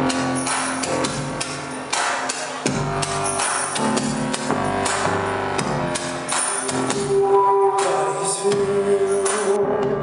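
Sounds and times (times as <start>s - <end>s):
sharp percussive hits: 0.0s - 7.2s
sustained synth tones: 2.7s - 7.7s.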